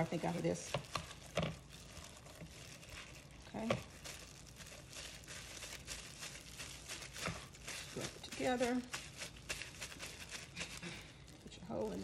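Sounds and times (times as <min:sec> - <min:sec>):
plastic gloves crinkling: 0:00.0 - 0:12.0.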